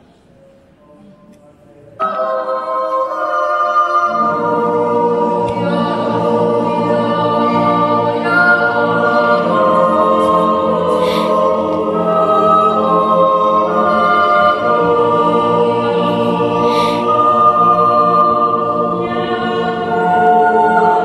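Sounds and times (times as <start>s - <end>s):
choir singing in close harmony: 2.0s - 21.0s.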